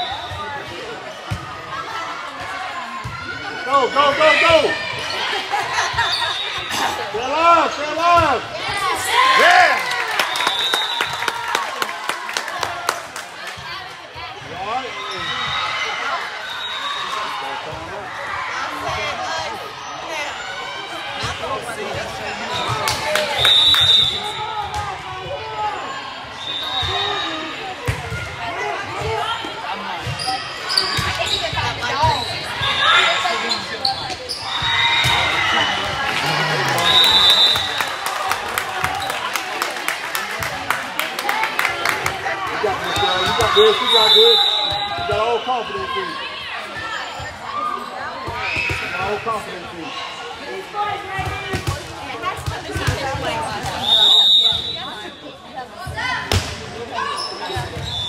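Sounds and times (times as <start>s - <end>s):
voices calling and shouting: 41.9s - 58.0s
volleyball hit and bouncing: 56.2s - 56.7s.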